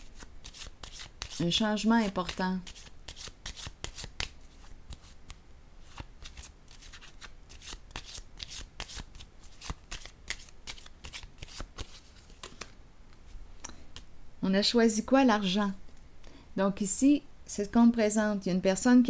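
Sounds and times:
cards being shuffled: 0.1s - 12.8s.

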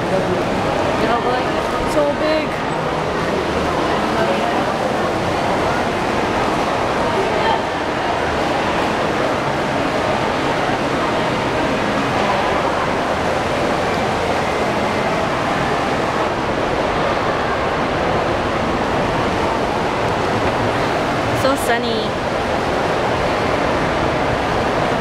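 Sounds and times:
crowd hubbub: 0.0s - 25.0s
distant voices: 0.0s - 25.0s.

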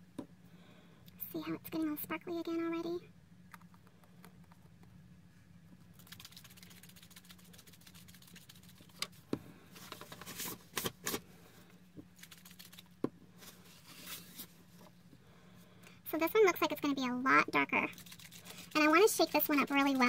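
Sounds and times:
faint steady hum: 0.0s - 20.0s
paper rustling: 9.8s - 11.2s, 13.4s - 14.6s.

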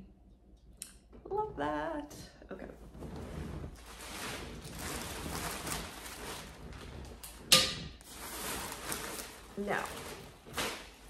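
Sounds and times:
fabric rustling: 2.8s - 11.0s.

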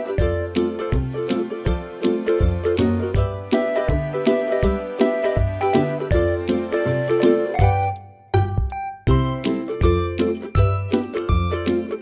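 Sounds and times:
music with steady beat and bass: 0.0s - 12.0s.

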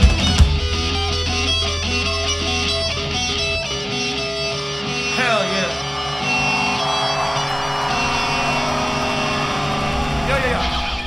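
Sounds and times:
live rock band playing: 0.0s - 9.6s.

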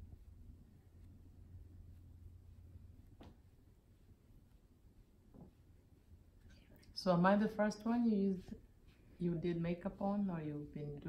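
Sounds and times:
person speaking: 9.2s - 11.0s.

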